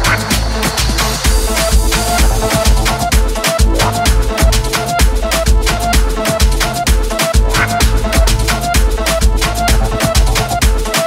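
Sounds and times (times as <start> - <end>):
kick drum: 1.3 - 10.9
house dance music: 1.3 - 11.0.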